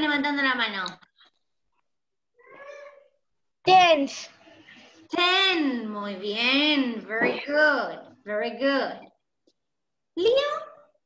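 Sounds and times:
faint high-pitched voice-like call: 2.4 - 3.2.

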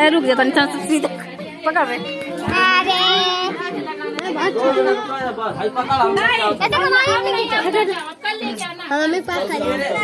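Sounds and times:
people talking excitedly: 0.0 - 10.0.

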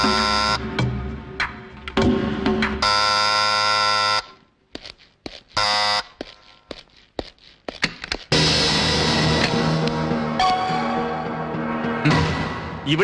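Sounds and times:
electric buzzer: 0.0 - 0.7, 2.8 - 4.4, 5.6 - 6.5.

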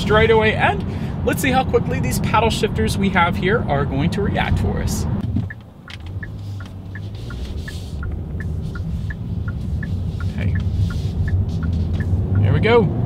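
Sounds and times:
car engine and road rumble: 0.0 - 13.0
light ticking: 5.4 - 12.5.

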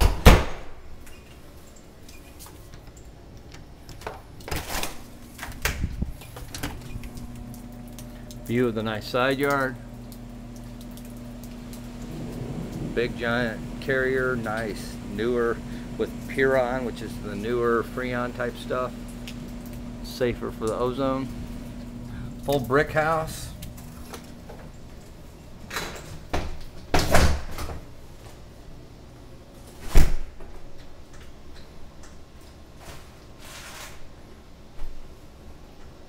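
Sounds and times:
door thudding shut: 0.0 - 0.8
air conditioner condenser humming: 0.0 - 36.0.

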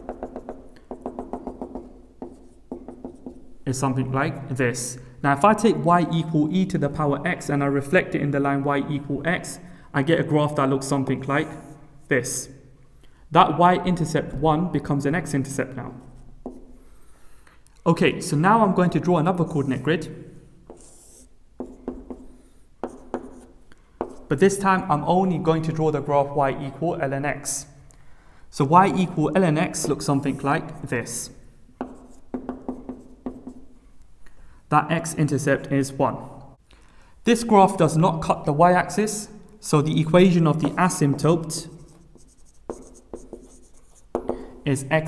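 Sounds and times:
marker tapping on whiteboard: 0.0 - 3.5, 16.4 - 16.8, 20.7 - 24.3, 31.8 - 33.7, 40.6 - 44.5
marker pen on whiteboard: 0.0 - 4.1, 13.8 - 25.8, 28.6 - 34.1, 38.9 - 45.0.

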